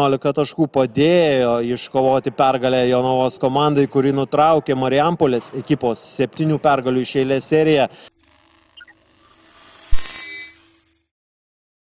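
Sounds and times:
bell-like ringing tones: 0:08.2 - 0:11.0
rising whoosh: 0:09.2 - 0:10.7.

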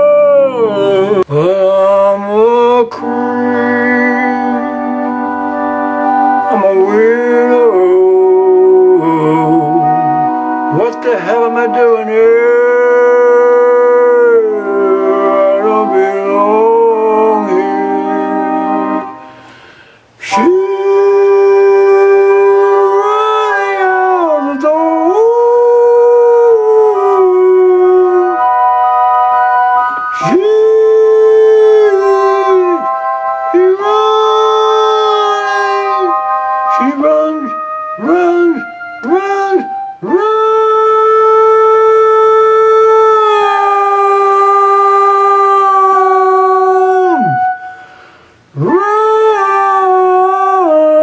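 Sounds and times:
man howling a long note: 0:00.0 - 0:19.4, 0:20.2 - 0:48.0, 0:48.6 - 0:51.0.

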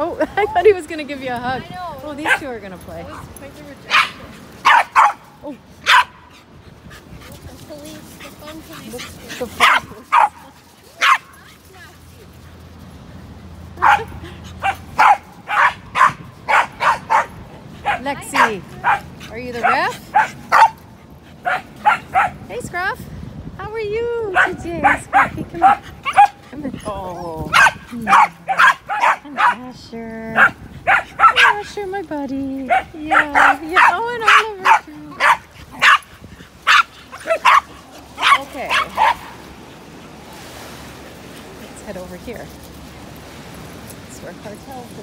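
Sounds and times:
small dog barking: 0:02.2 - 0:02.4, 0:03.9 - 0:05.2, 0:05.8 - 0:06.3, 0:09.6 - 0:11.3, 0:13.8 - 0:20.8, 0:21.4 - 0:22.4, 0:24.4 - 0:26.4, 0:27.5 - 0:29.6, 0:30.4 - 0:31.7, 0:32.7 - 0:39.4.

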